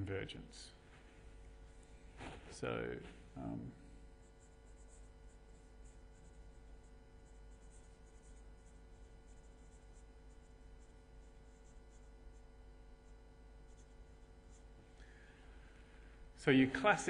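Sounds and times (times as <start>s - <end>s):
pen scratching on paper: 4.2s - 14.8s.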